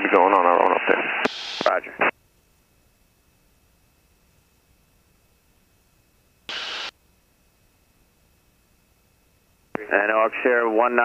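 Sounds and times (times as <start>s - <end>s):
faint intercom hiss: 0.0s - 2.2s, 6.5s - 7.0s
radio static burst: 0.0s - 2.2s, 6.5s - 6.9s.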